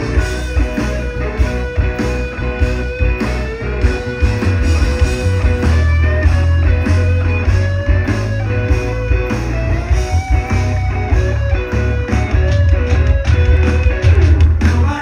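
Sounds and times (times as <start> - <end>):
bass guitar: 0.0 - 15.0
drums: 0.0 - 15.0
electric guitars bending notes: 0.0 - 15.0.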